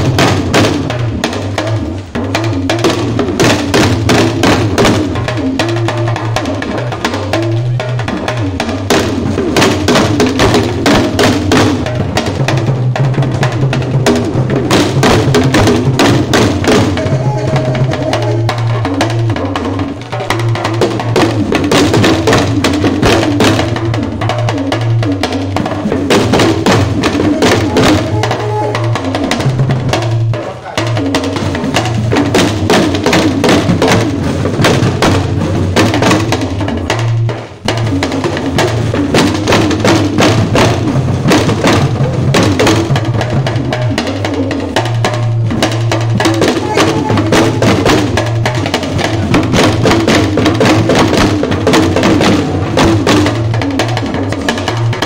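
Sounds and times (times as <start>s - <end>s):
talking drums playing fast rhythm: 0.0s - 55.0s.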